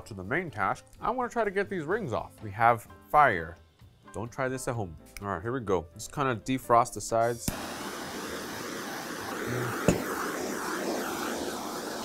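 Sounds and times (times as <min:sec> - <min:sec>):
gas torch hissing: 0:07.1 - 0:12.0.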